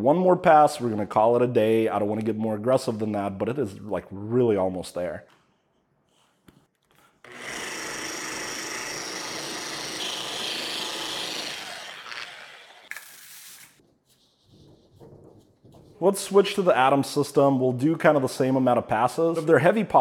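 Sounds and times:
machine polisher running: 0:07.3 - 0:13.0.

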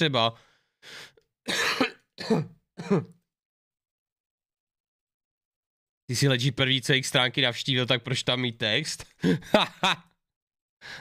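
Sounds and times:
man coughing: 0:01.5 - 0:03.2.

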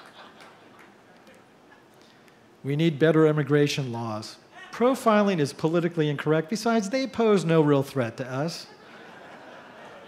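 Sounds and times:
audience laughter: 0:08.6 - 0:10.0.

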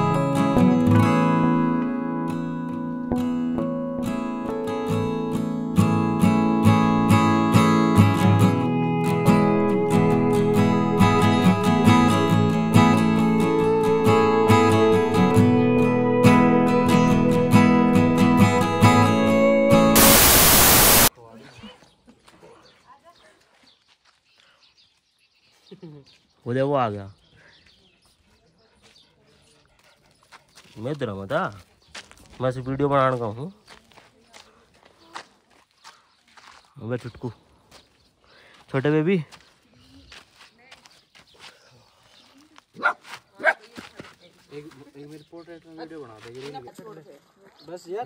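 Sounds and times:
dog barking: 0:42.8 - 0:43.8.

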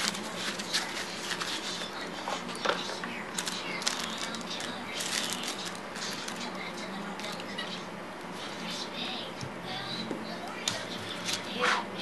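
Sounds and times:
plastic packaging crinkling: 0:00.0 - 0:01.8, 0:03.3 - 0:07.4.

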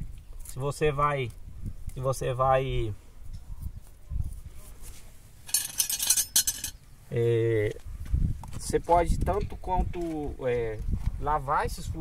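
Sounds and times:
small sharp metal clinks: 0:05.5 - 0:06.8.

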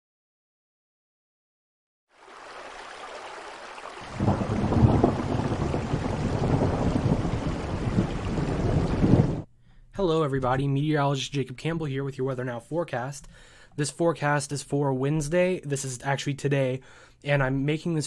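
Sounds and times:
rain hiss: 0:02.2 - 0:09.5
rolling thunderclap: 0:04.0 - 0:09.5.

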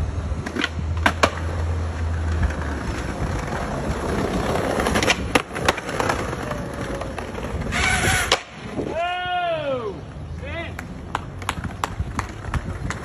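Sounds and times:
skateboard wheels rolling on bricks: 0:00.1 - 0:09.1, 0:10.0 - 0:13.0
skateboard clacks: 0:00.4 - 0:08.8, 0:10.5 - 0:13.0
skateboard scrape: 0:00.4 - 0:08.9.

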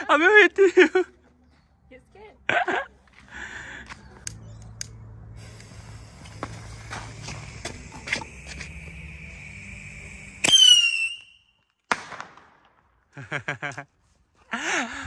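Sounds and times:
fuse hissing and crackling: 0:04.8 - 0:11.3
rocket whistle: 0:07.6 - 0:11.8
firework bang: 0:11.9 - 0:12.6.

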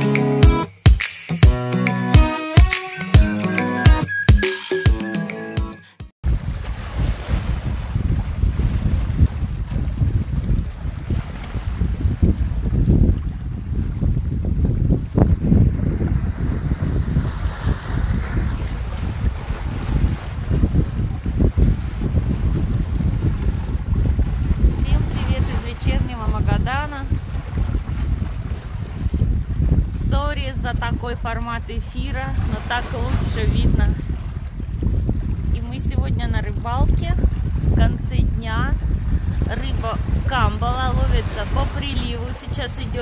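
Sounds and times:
music track: 0:00.0 - 0:06.1
wind buffeting microphone: 0:06.2 - 0:43.0
waves breaking over rocks: 0:06.3 - 0:26.4.

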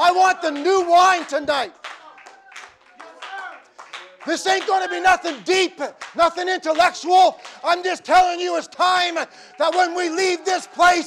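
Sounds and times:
congregation clapping: 0:00.0 - 0:11.0.

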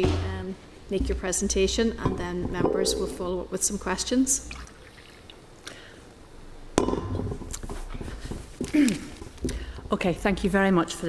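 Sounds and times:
low hum: 0:02.4 - 0:03.9.

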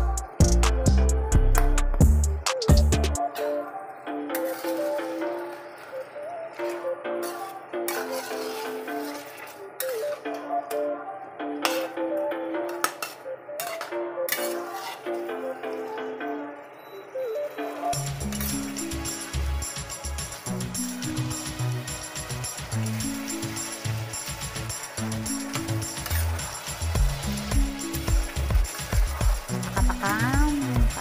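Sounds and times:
background music with bass and beat: 0:00.0 - 0:03.4, 0:17.9 - 0:31.0
metal spatula scraping steel wok: 0:04.3 - 0:05.2, 0:06.6 - 0:10.2, 0:12.8 - 0:15.3, 0:18.0 - 0:27.3.

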